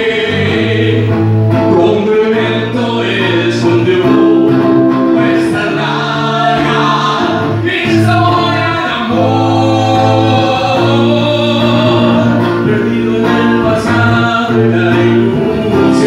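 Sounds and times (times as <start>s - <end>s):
musical accompaniment: 0.0s - 16.0s
two men singing a duet: 0.0s - 16.0s.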